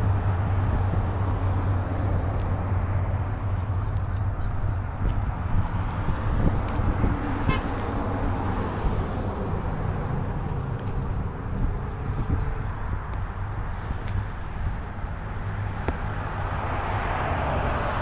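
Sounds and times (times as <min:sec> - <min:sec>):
road traffic hum: 0:00.0 - 0:18.0.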